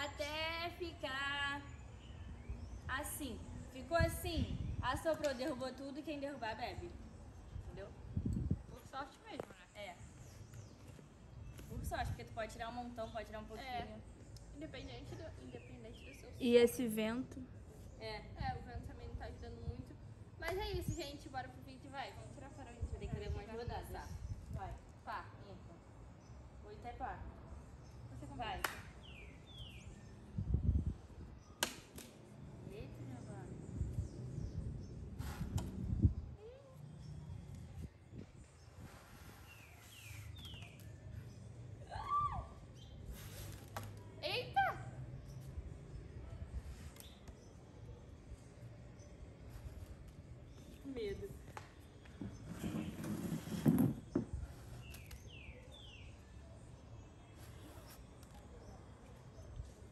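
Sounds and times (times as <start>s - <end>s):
wind rumble on microphone: 1.7s - 5.8s, 6.4s - 12.9s, 17.7s - 21.4s, 22.5s - 25.7s, 29.0s - 31.6s, 32.3s - 43.3s.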